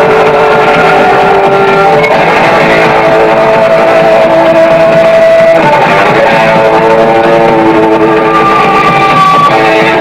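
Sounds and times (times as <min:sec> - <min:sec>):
distorted electric guitar note: 0:00.0 - 0:10.0
live rock band: 0:00.0 - 0:10.0.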